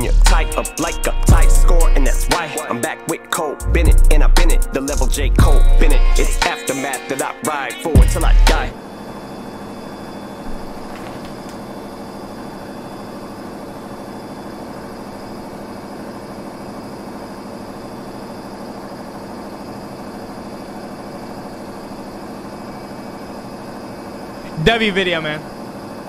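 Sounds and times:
steady background hum: 0.0s - 26.0s.

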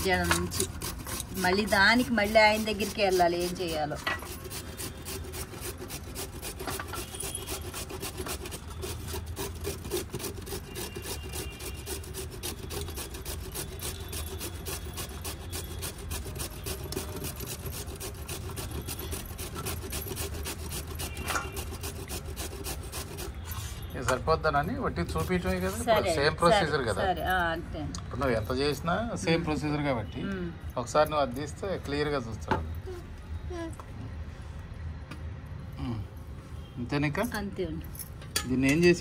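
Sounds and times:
carrot grated on metal grater: 0.0s - 23.4s.

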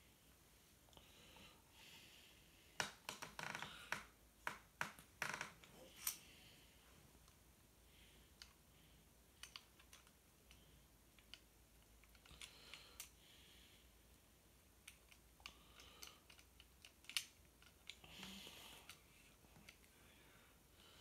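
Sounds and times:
small clicks: 9.4s - 10.6s, 14.8s - 19.0s.

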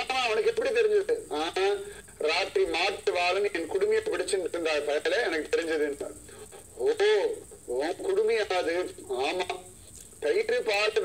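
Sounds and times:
man talking on television: 0.0s - 11.0s.

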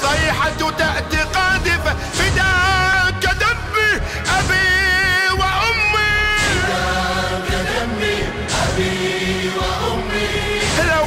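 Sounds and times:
voices singing mourning elegy: 0.0s - 11.0s.

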